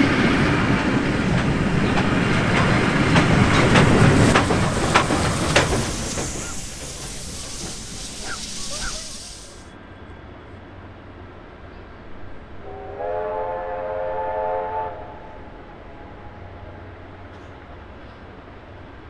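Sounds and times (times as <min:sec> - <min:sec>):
steam train hiss and rumble: 0:00.0 - 0:19.0
steam locomotive whistle: 0:12.6 - 0:15.5.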